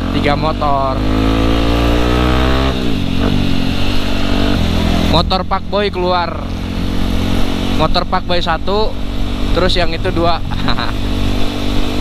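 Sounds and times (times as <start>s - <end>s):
motorcycle engine under throttle: 0.0s - 12.0s.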